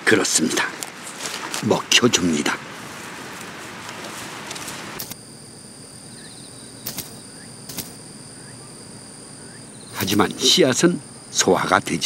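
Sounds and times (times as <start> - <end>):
leaves rustling: 0.3 - 5.2, 10.0 - 10.8
high-pitched insect drone: 4.6 - 12.0.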